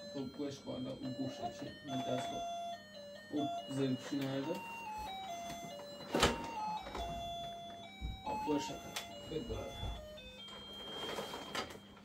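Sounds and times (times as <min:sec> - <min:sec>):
tinny electronic toy tune: 0:00.0 - 0:12.0
electronic voice phrases: 0:00.1 - 0:02.6, 0:03.3 - 0:04.8.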